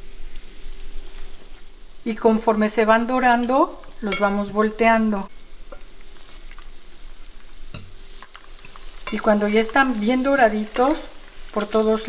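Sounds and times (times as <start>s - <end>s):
food sizzling in hot oil: 0.0s - 12.0s.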